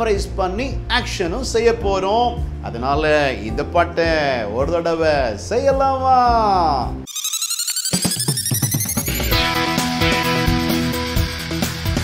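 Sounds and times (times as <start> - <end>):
high electronic ringing tone: 7.1 - 9.7
song backing beat: 8.0 - 12.0.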